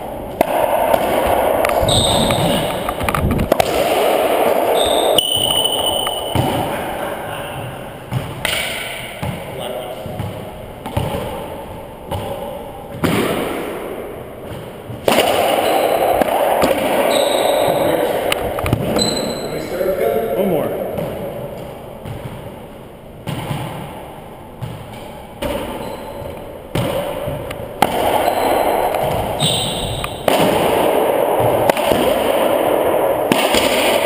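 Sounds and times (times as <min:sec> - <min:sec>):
racquetball hits echoing: 0:00.0 - 0:34.0.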